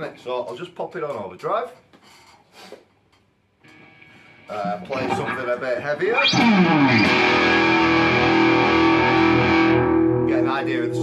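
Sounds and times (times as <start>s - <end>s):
guitar amplifier hiss and hum: 3.5s - 11.0s.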